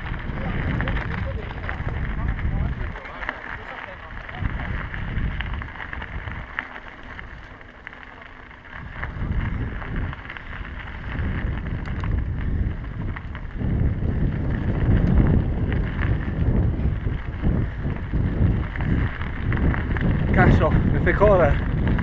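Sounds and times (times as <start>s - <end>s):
tyres crunching on gravel: 0.0s - 22.0s
wind buffeting microphone: 0.0s - 22.0s.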